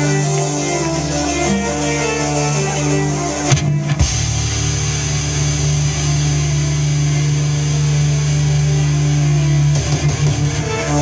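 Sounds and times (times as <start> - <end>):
band playing low drone: 0.0 - 11.0.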